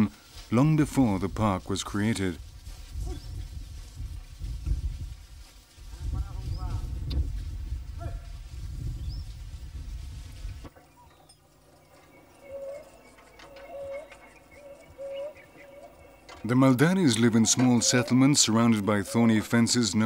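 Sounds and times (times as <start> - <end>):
low wind rumble: 0.4 - 10.8
faint passing calls: 11.7 - 20.0.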